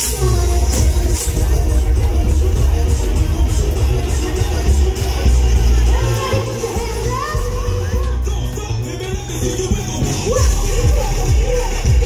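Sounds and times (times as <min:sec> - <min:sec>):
crowd voices: 0:00.0 - 0:12.0
live band music with heavy bass: 0:00.0 - 0:12.0.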